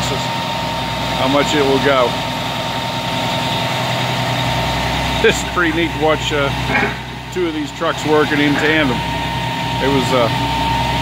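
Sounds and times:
diesel truck engine running: 0.0 - 11.0
thin steady whine: 0.0 - 11.0.

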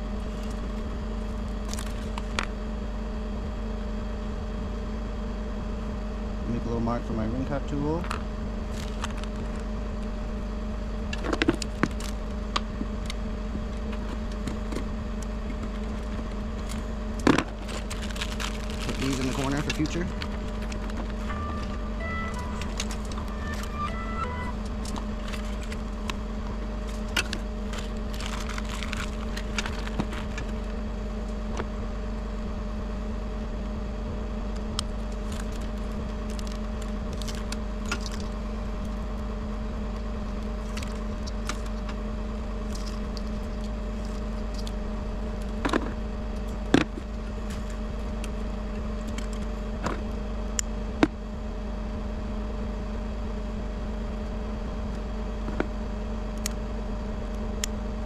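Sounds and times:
truck engine idling: 0.0 - 58.0.

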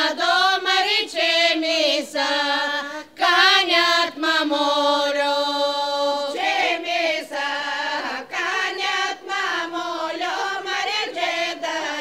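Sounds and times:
women's choir singing unaccompanied: 0.0 - 12.0.

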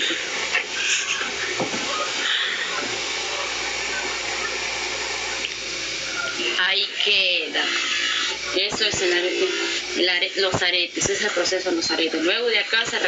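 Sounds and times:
gas torch hissing: 0.0 - 13.0.

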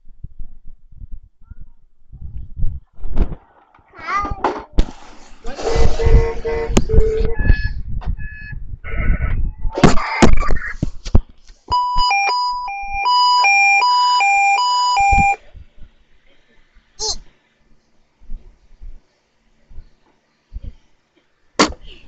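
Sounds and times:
electronic beeping tune: 11.8 - 15.4.

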